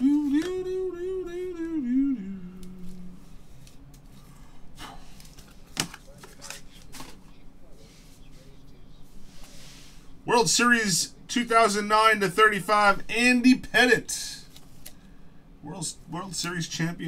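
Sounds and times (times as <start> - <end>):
trading cards rustling: 0.0 - 0.7, 5.0 - 7.3
man singing wordless phrase: 0.0 - 3.1.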